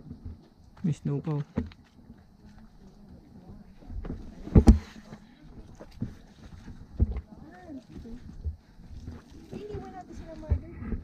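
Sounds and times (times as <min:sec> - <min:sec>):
footsteps on rock: 0:03.8 - 0:11.0.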